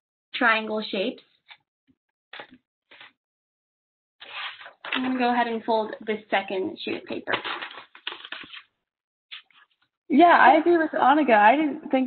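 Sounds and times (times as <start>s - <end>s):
paper rustling and crinkling: 2.4s - 3.1s, 4.2s - 5.8s, 7.2s - 8.7s.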